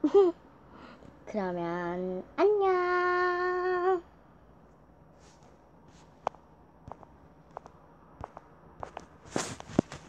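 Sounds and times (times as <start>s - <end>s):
brushing rustle: 5.2s - 6.2s, 8.8s - 10.0s.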